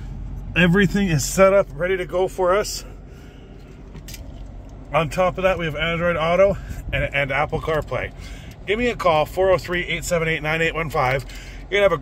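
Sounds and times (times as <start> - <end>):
car engine idling hum: 0.0 - 12.0.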